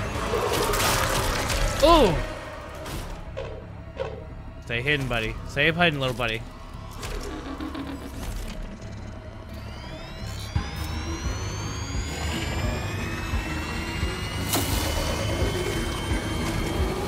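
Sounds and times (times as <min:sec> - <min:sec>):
tense music: 0:00.0 - 0:17.0
rising whines: 0:06.5 - 0:17.0.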